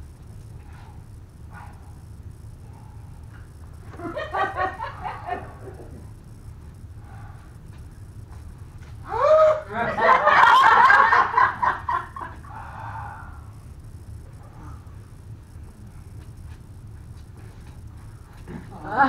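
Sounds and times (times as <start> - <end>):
person crying out: 9.0 - 9.8.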